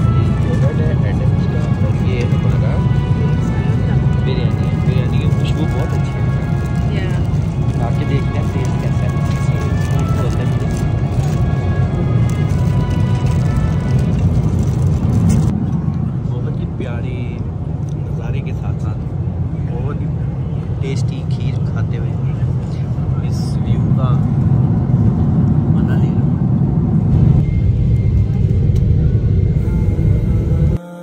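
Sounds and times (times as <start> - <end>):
people talking: 0.0 - 6.2, 6.9 - 10.8, 16.2 - 19.0, 20.8 - 24.3, 25.7 - 26.2
airliner cabin rumble: 0.0 - 30.8.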